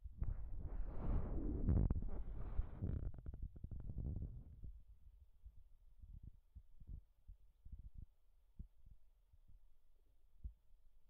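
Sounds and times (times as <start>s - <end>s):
low thuds and rumble on microphone: 0.0s - 8.7s.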